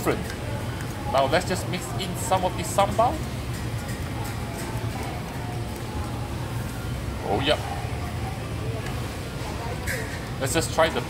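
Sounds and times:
faint distant voices: 0.0 - 11.0
low hum of busy food centre: 0.0 - 11.0.

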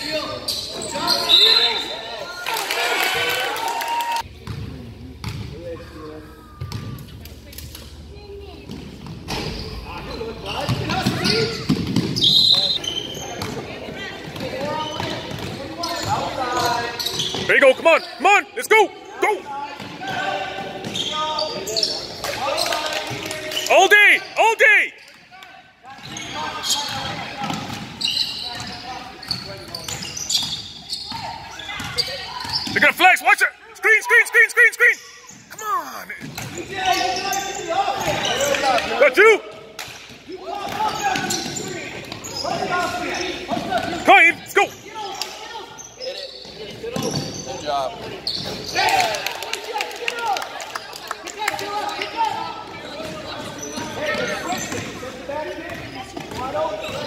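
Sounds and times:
sneakers squeaking: 0.0 - 2.4, 4.3 - 7.2, 7.8 - 49.2, 51.5 - 57.0
voices of players and spectators: 0.0 - 57.0
basketball bouncing on court: 4.4 - 5.5, 10.6 - 12.3, 13.4 - 16.3, 26.8 - 28.0.

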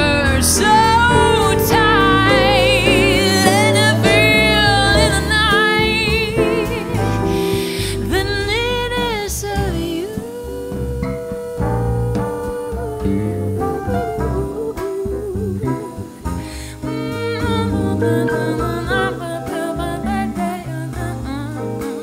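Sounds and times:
jazz band playing ballad: 0.0 - 22.0
woman's wordless vocal: 0.0 - 22.0.

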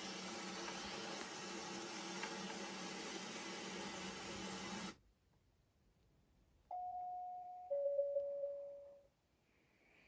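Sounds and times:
two-note ding-dong chime: 6.7 - 9.0.

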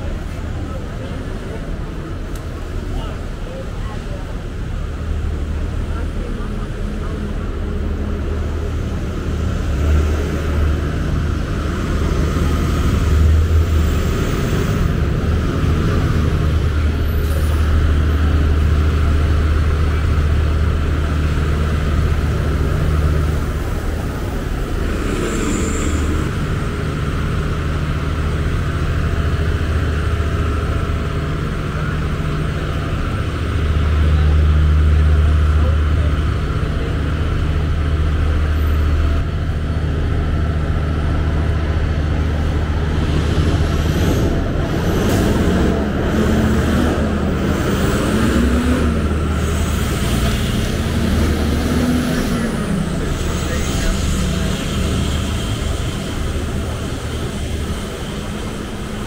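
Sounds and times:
people talking: 0.0 - 26.8, 28.0 - 59.0
heavy engine rumble: 0.0 - 59.0.

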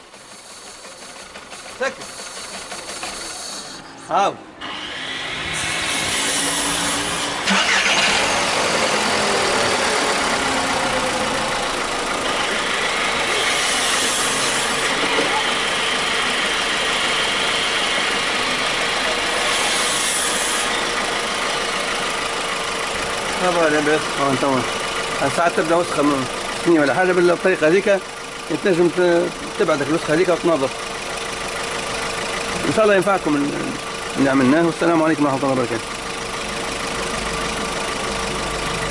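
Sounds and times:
car engine starting and idling: 0.0 - 38.9
air intake hiss: 0.2 - 4.0.

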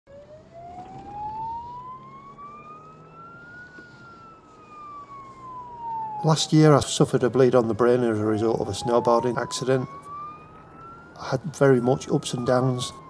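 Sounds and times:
emergency vehicle siren wailing: 0.1 - 13.0.

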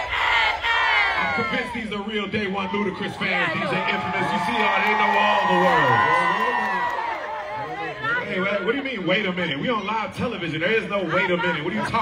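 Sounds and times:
crowd yelling and cheering: 0.0 - 12.0.

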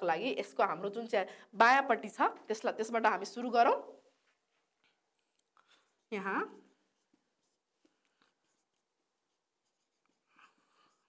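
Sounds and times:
marker pen writing on whiteboard: 4.1 - 11.0.

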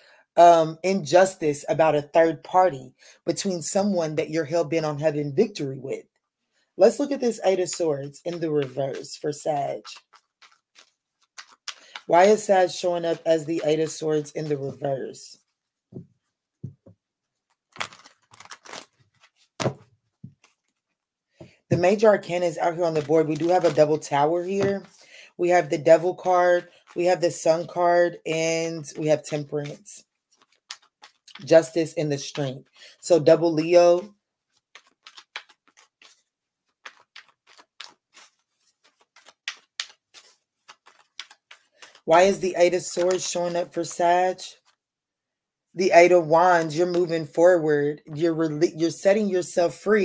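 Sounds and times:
cards rustling and flicking: 6.9 - 14.8, 17.5 - 25.1, 28.9 - 32.8, 33.6 - 44.0.

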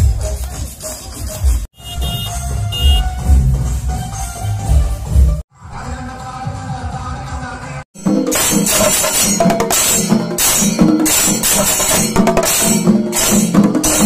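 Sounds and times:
drums struck with sticks: 8.0 - 14.0
hand cymbals clashing: 8.0 - 14.0.

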